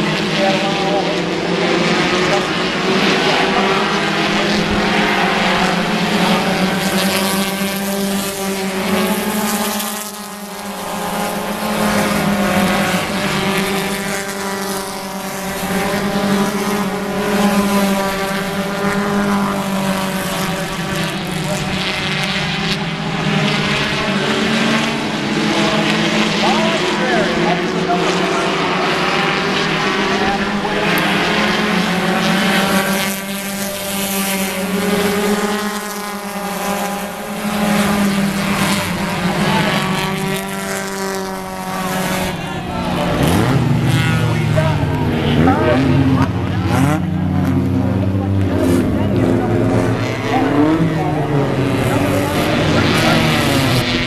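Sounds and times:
race car engines racing: 0.0s - 54.0s.

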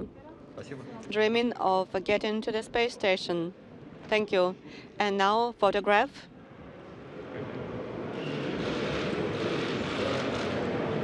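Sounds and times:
camera shutters clicking rapidly: 8.6s - 10.7s.

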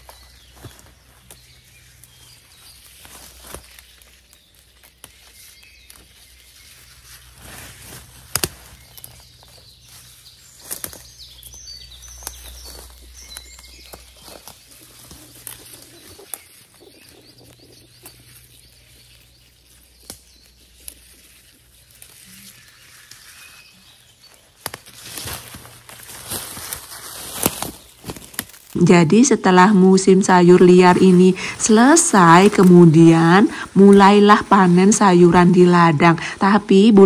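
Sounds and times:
birds chirping faintly: 0.0s - 37.0s
leaves rustling: 0.0s - 37.0s
plant stems snapping: 7.3s - 16.6s, 19.7s - 22.3s, 24.2s - 28.8s.

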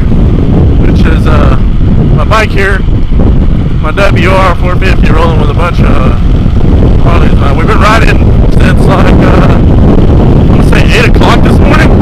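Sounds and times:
wind buffeting microphone: 0.0s - 12.0s
rider's voice: 0.8s - 2.9s, 3.8s - 6.3s, 6.9s - 9.7s, 10.5s - 12.0s.

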